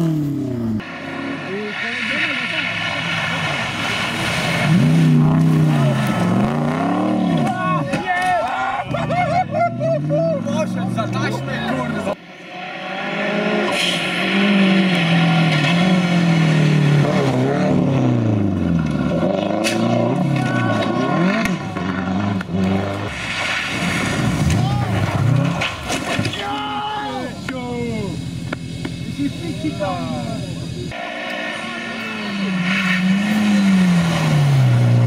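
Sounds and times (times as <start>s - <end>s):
rally car engines at full throttle: 0.0s - 35.0s.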